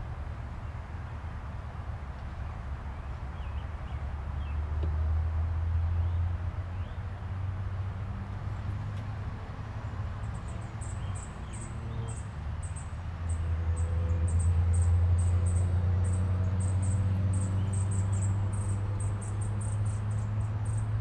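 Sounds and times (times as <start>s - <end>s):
insect chirping: 16.6s - 20.9s.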